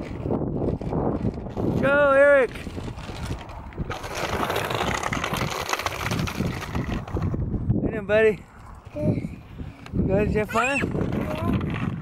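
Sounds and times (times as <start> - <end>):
bicycle rolling on gravel: 0.0 - 7.6, 10.1 - 12.0.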